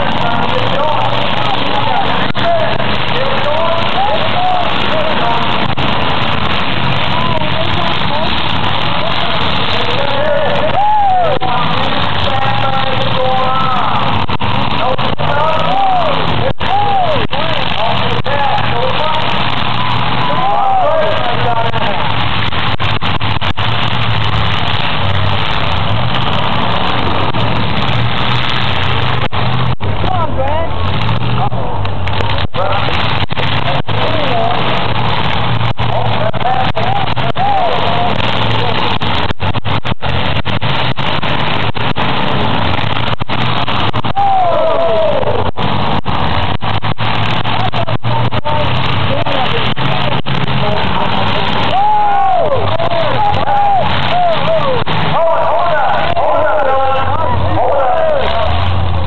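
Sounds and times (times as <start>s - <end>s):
car engines revving: 0.0s - 59.0s
crowd voices: 0.0s - 59.0s.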